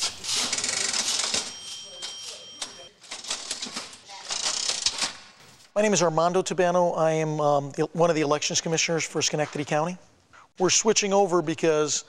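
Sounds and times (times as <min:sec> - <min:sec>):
mechanical clicking and clattering: 0:03.0 - 0:05.5.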